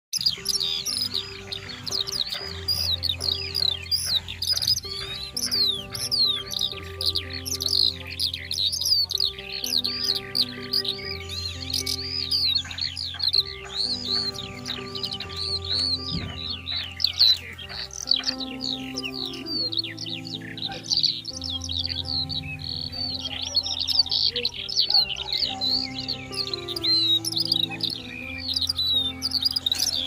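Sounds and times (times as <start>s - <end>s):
small birds chirping: 0.1s - 30.0s
soft music of held notes: 0.2s - 30.0s.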